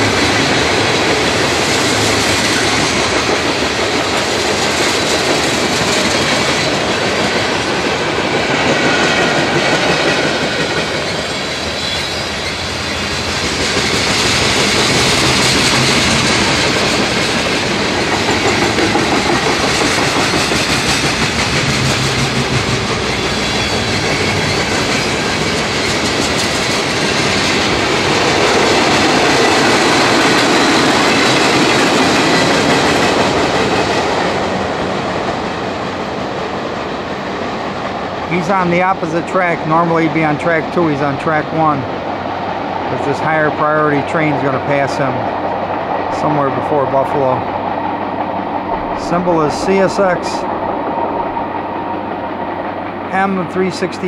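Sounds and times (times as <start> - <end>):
freight train wheels on rail: 0.0 - 54.0.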